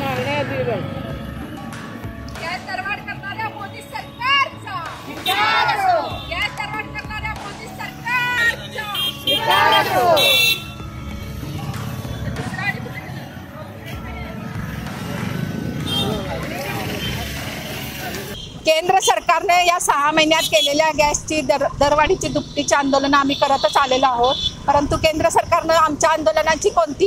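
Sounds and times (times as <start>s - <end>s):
women shouting protest slogans: 2.6s - 10.6s
low rumble of passing traffic: 8.1s - 27.0s.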